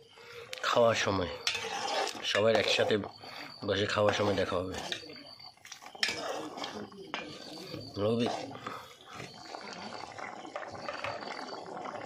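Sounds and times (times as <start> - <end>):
metal ladle scraping a pot: 0.9 - 12.0.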